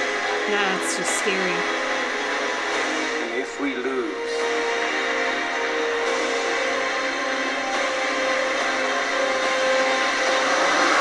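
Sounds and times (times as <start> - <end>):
battle sound effects: 0.5 - 1.6.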